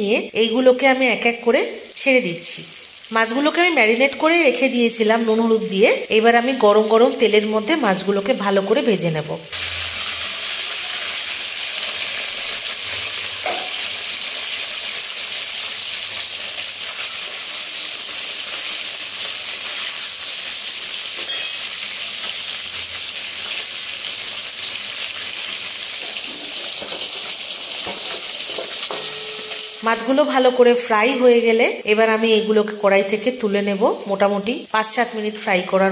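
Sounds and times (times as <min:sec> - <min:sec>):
fish sizzling in hot oil: 0:01.7 - 0:08.8, 0:09.5 - 0:35.9
person talking: 0:29.8 - 0:35.9.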